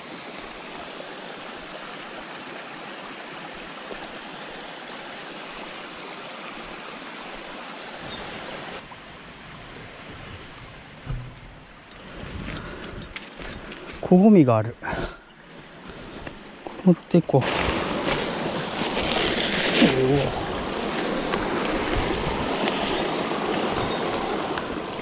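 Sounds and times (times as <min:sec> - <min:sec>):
stream water rushing: 0:00.0 - 0:25.0
bird chirps: 0:08.0 - 0:09.2
low thumps of movement: 0:10.2 - 0:13.6.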